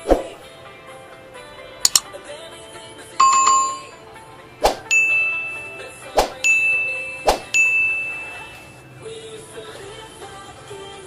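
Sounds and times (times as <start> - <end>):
chime: 3.2 - 4.0, 4.9 - 8.9
notification bell ding: 3.2 - 4.0, 4.9 - 8.8.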